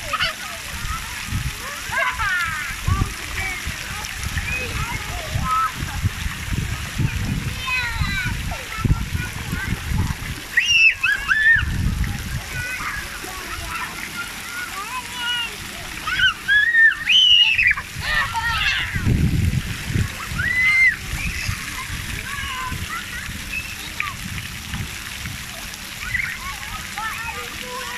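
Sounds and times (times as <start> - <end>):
water splashing and spraying: 0.0 - 27.9
children shouting: 10.5 - 19.2, 19.9 - 24.2, 25.6 - 27.9.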